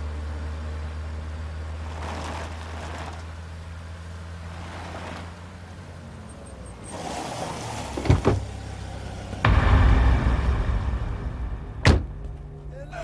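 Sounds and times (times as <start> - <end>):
car engine droning: 0.0 - 13.0
rushing noise: 9.4 - 13.0.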